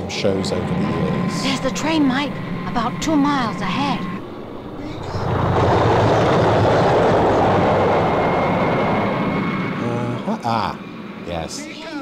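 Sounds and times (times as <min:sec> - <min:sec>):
train rushing rumble: 0:00.0 - 0:12.0.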